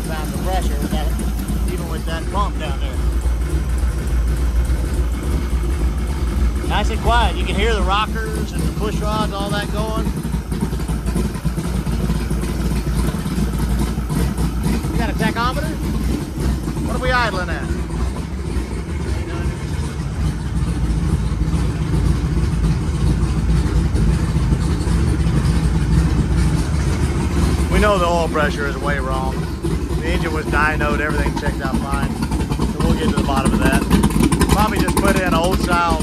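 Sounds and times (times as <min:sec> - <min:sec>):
car engine running: 0:00.0 - 0:36.0.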